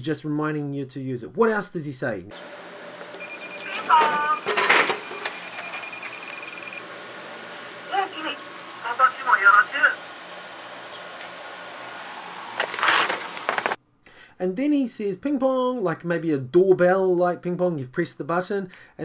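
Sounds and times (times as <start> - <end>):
high electronic tone: 3.1 - 6.9
recorded machine voice speaking: 3.6 - 4.8, 7.9 - 10.0.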